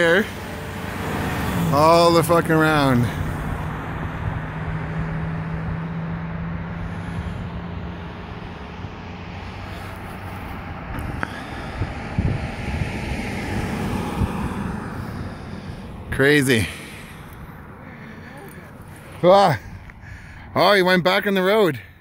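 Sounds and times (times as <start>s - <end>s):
car road and engine noise: 0.0s - 22.0s
wind: 0.0s - 22.0s.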